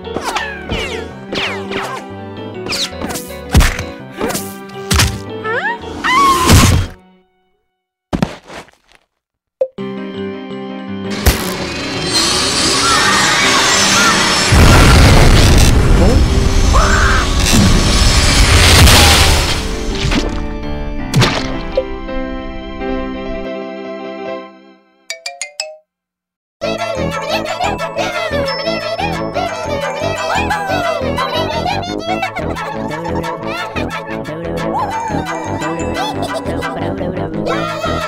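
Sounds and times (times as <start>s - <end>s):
cartoon background music: 0.0s - 7.5s, 9.6s - 17.3s, 19.0s - 25.8s, 26.6s - 38.0s
cartoon impact thunk: 6.4s - 7.0s, 11.2s - 11.6s.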